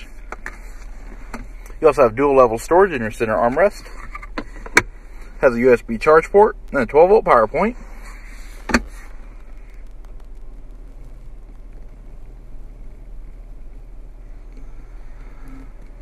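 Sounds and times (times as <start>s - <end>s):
low hum inside car cabin: 0.0s - 16.0s.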